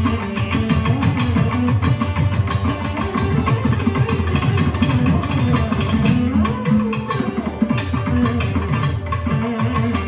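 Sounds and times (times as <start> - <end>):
veena playing low notes: 0.0 - 10.0.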